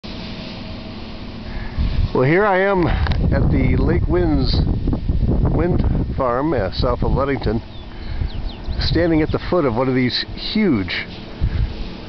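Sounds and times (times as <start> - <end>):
faint steady hum: 0.0 - 12.0
low rumble: 0.1 - 10.4
wind buffeting microphone: 1.6 - 12.0.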